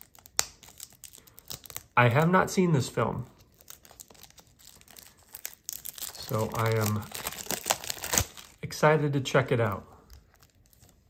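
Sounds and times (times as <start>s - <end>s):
shrink wrap crinkling: 0.0s - 11.0s.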